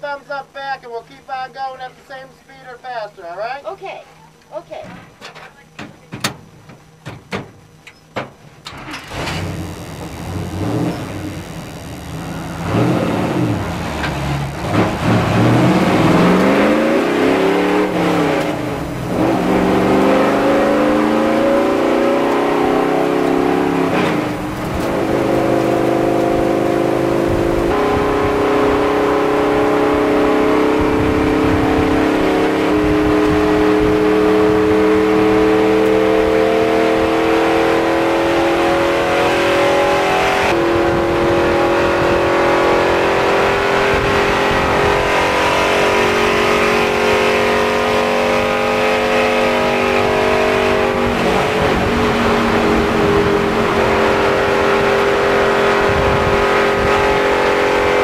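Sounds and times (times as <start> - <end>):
race car engine running hard: 8.7 - 58.0.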